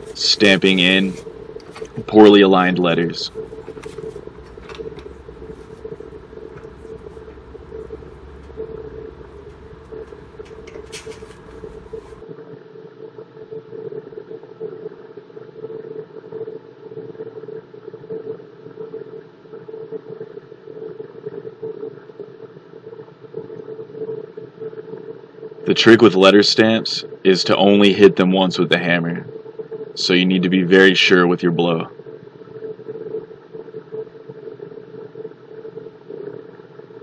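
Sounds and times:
faint rustle: 0:00.0 - 0:12.2
steady background hum: 0:00.0 - 0:37.0
low rumble: 0:03.3 - 0:12.2.

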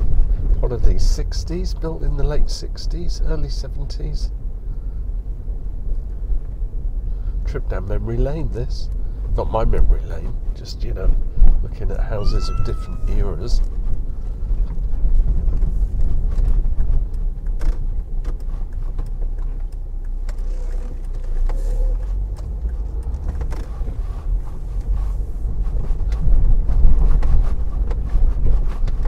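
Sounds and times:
engine and tyre rumble: 0:00.0 - 0:29.0.

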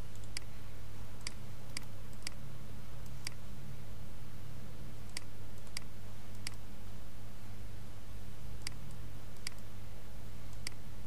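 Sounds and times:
low steady hum: 0:00.0 - 0:11.0
computer mouse clicking: 0:00.1 - 0:00.5, 0:01.2 - 0:02.4, 0:03.0 - 0:03.4, 0:05.1 - 0:06.6, 0:08.6 - 0:09.7, 0:10.5 - 0:10.8.

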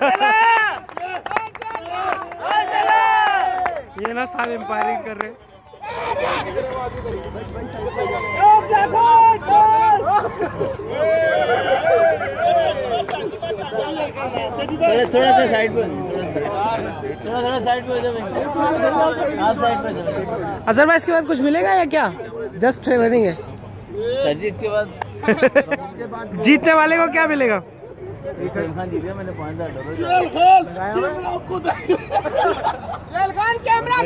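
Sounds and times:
sharp claps: 0:00.0 - 0:05.3
men talking: 0:00.0 - 0:34.0
men shouting: 0:07.9 - 0:14.2.

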